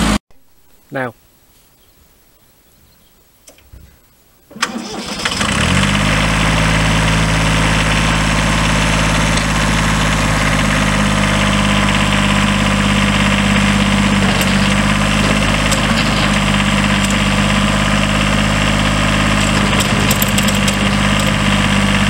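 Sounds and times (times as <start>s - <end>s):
diesel engine cranking and idling: 4.5s - 22.0s
starter click: 13.8s - 17.8s, 19.2s - 21.6s.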